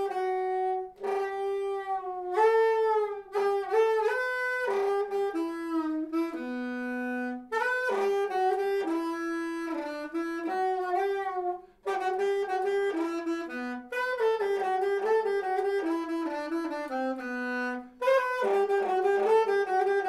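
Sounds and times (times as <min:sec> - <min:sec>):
slow saxophone solo: 0:00.0 - 0:20.0.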